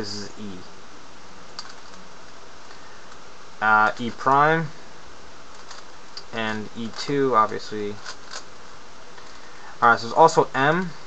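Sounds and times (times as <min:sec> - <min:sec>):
steady hiss: 0:00.0 - 0:11.0
puzzle cube being turned: 0:01.6 - 0:03.2, 0:05.5 - 0:07.2, 0:07.9 - 0:08.5.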